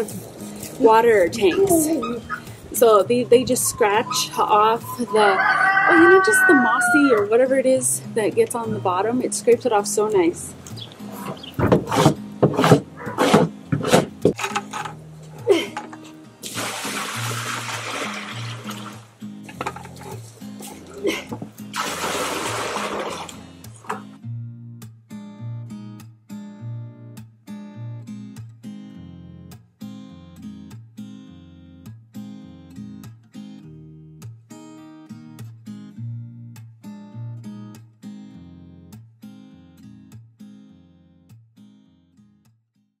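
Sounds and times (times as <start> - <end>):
acoustic guitar music: 0.0 - 42.6
scraper scratching metal tank: 11.1 - 14.9
water sloshing: 16.4 - 19.2, 21.8 - 24.1.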